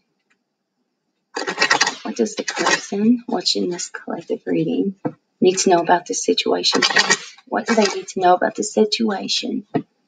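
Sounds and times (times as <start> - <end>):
cards being shuffled: 1.4 - 2.9, 6.7 - 8.1.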